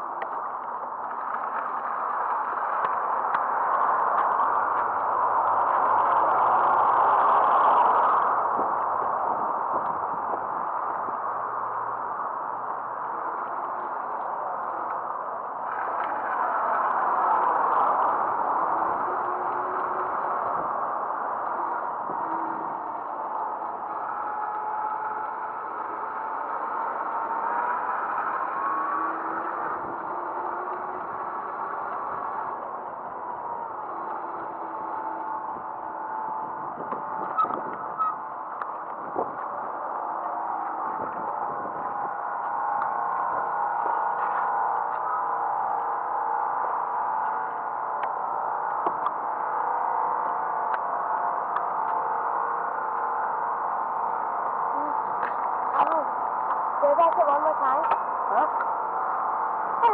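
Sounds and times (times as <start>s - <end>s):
tyre and road noise: 0.0s - 59.9s
scooter motor whine: 15.7s - 59.0s.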